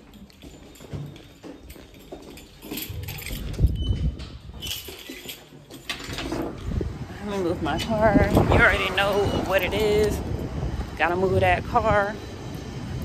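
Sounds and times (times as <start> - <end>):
footsteps: 0.0 - 11.0.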